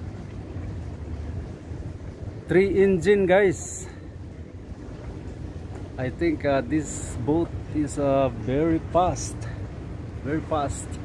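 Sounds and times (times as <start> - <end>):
low outdoor rumble: 0.0 - 11.0
wind buffeting microphone: 0.0 - 11.0.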